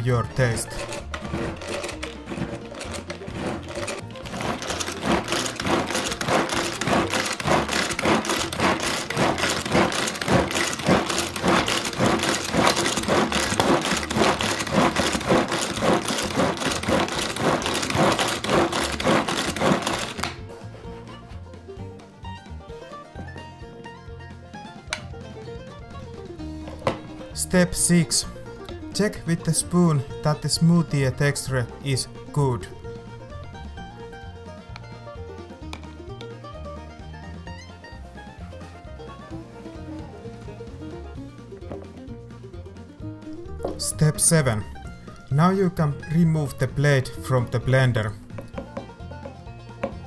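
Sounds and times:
manual food chopper whirring: 0.0 - 20.5, 43.4 - 50.0
banjo music: 0.0 - 50.0.

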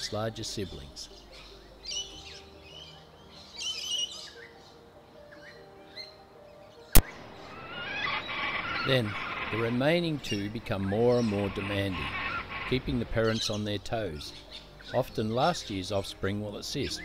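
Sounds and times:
birds chirping and chattering: 0.0 - 17.0
soft sustained music tones: 0.0 - 17.0.

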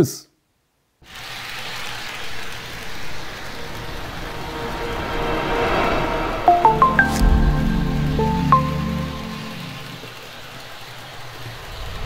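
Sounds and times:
train rumbling on rails: 1.2 - 12.0.

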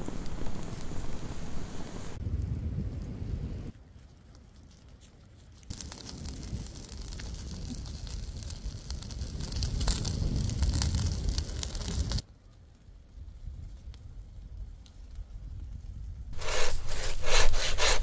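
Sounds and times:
embers crackling: 0.0 - 18.0.

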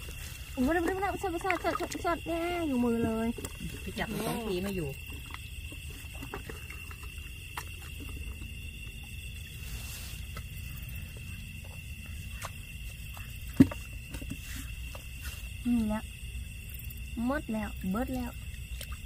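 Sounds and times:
night insects droning: 0.0 - 19.0.

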